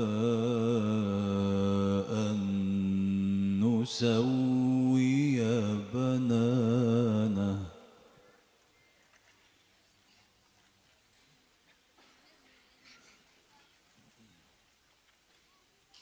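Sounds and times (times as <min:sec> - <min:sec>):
man reciting melodically: 0:00.0 - 0:08.2.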